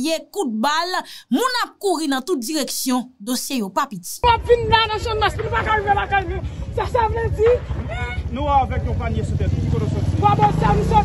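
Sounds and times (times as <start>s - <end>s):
vehicle engine running at low revs: 4.4s - 11.0s.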